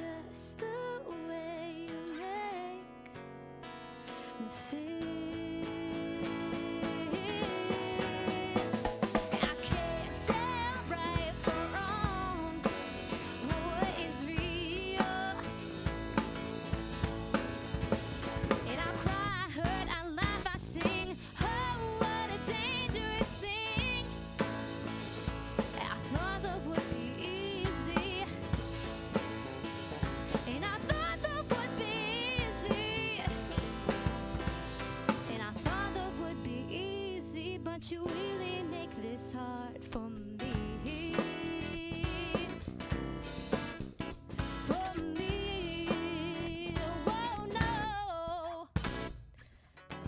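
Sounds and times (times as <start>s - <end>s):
woman singing: 0.0s - 3.2s, 4.4s - 15.9s, 18.4s - 24.2s, 25.6s - 28.6s, 30.3s - 34.4s, 35.1s - 42.7s, 44.6s - 48.8s
strummed acoustic guitar: 0.0s - 48.1s, 48.7s - 50.0s
electric bass: 5.1s - 37.2s, 39.9s - 48.1s
drum kit beat: 5.8s - 36.3s, 40.5s - 48.0s, 48.6s - 49.3s.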